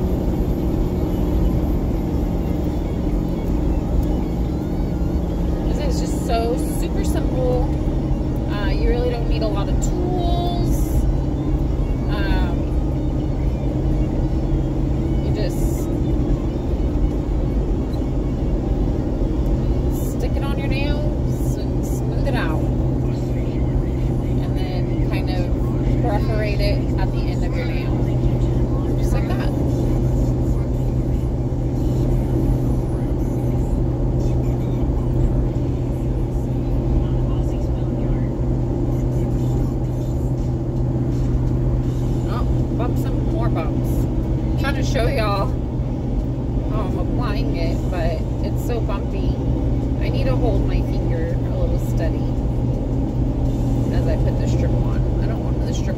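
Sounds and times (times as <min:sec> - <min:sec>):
car road and engine noise: 0:00.0 - 0:55.9.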